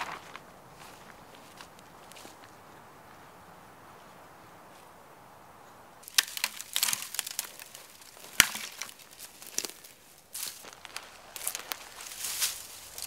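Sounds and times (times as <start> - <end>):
boughs rustling and crackling: 6.0 - 13.0
branch cracking: 6.0 - 13.0.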